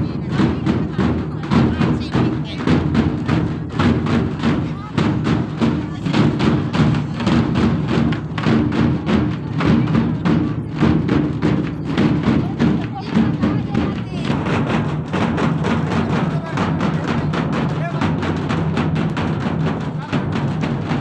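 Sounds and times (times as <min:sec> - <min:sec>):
crowd voices: 0:00.0 - 0:21.0
fast drum beat: 0:00.0 - 0:21.0.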